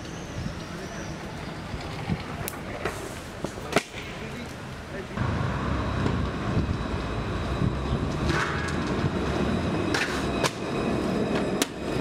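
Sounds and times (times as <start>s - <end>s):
wheels rolling over pavement: 0.0s - 4.6s, 5.2s - 12.0s.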